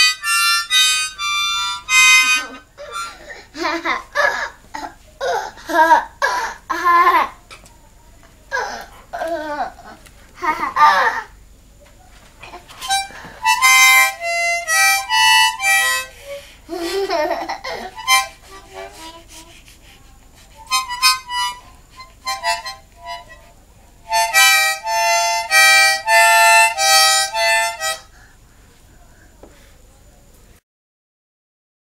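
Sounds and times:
harmonica blasts: 0:00.0 - 0:03.4, 0:12.8 - 0:16.6, 0:17.9 - 0:28.1.

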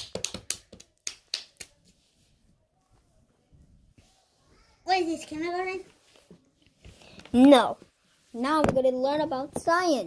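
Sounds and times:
person clapping: 0:00.0 - 0:01.7.

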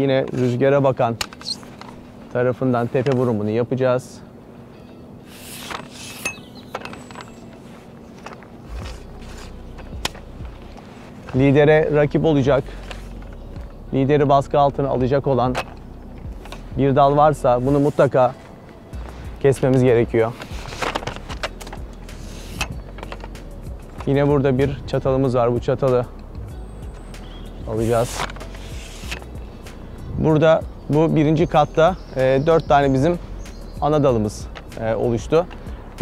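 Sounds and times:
pruner mechanism clicks and rattles: 0:00.0 - 0:02.4, 0:05.3 - 0:16.7, 0:19.4 - 0:24.8, 0:27.7 - 0:29.7
soft background music: 0:00.0 - 0:36.0
pole pruner snapping branch: 0:27.8 - 0:29.8.

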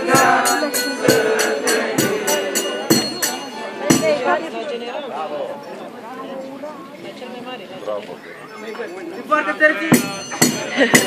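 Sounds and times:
group chanting: 0:00.0 - 0:04.4
heavy drum beats: 0:00.0 - 0:04.4, 0:09.8 - 0:11.0
rhythmic jingling bells: 0:00.0 - 0:04.4, 0:09.7 - 0:11.0.

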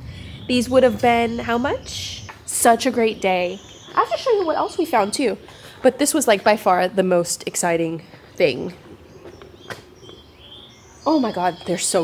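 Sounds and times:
high bird chirps: 0:00.0 - 0:05.2.

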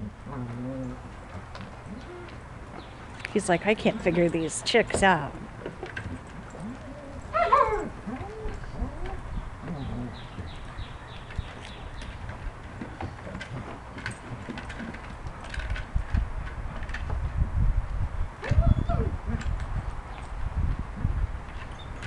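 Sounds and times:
dogs grumbling: 0:00.2 - 0:02.4, 0:05.4 - 0:10.9
dog whining: 0:06.1 - 0:10.4, 0:18.4 - 0:19.2.

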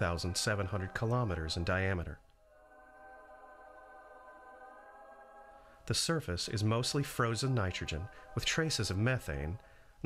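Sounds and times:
faint sustained synth chord: 0:00.0 - 0:09.6.

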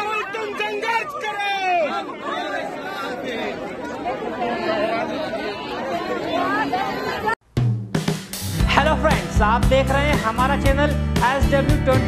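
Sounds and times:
crowd chatter: 0:00.0 - 0:07.4.

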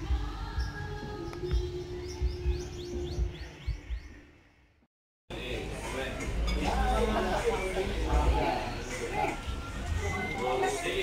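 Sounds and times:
bird chirping: 0:00.4 - 0:04.6
faint distant music: 0:05.3 - 0:11.0.

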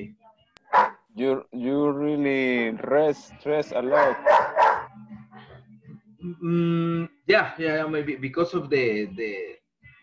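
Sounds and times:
dog barking: 0:00.7 - 0:01.0, 0:04.0 - 0:04.9.

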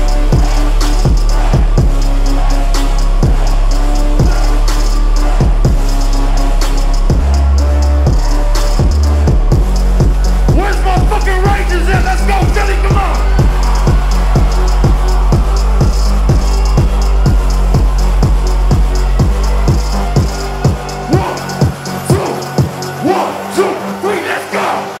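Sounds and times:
electronic dance music: 0:00.0 - 0:25.0.

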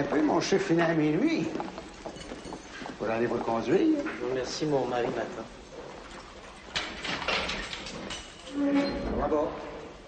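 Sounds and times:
iron gate clanking and rattling: 0:06.7 - 0:09.4.

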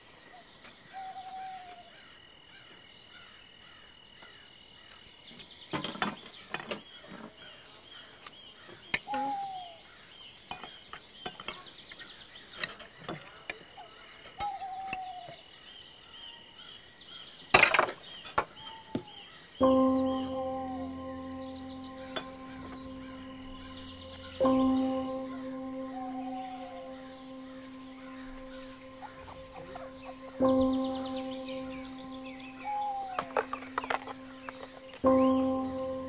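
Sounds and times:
insects and crickets chirring: 0:00.0 - 0:36.0
small birds chirping: 0:00.0 - 0:36.0.

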